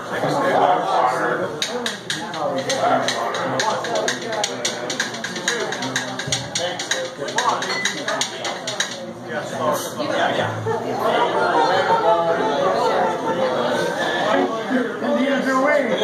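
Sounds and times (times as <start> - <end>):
voices in room: 0.0 - 16.0
quick drum kit taps: 1.6 - 9.0.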